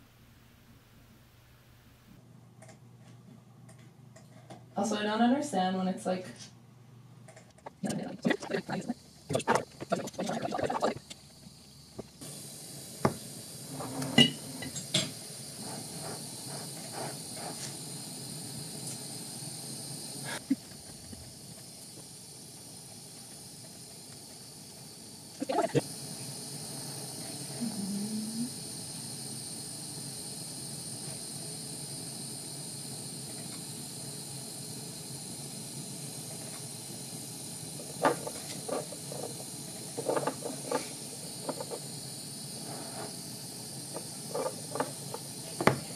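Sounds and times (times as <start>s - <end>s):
gas torch flame hissing: 7.3s - 45.9s.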